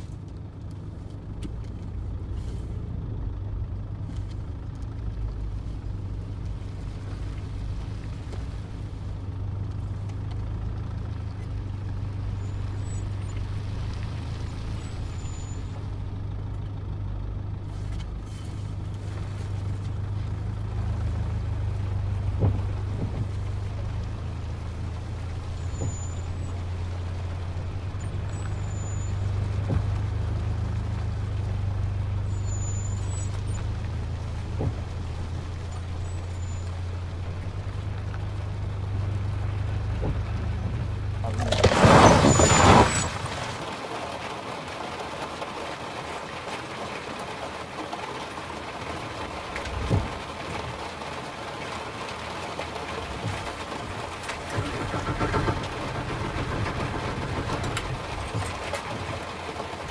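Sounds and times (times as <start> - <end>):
car engine running: 0.0 - 59.9.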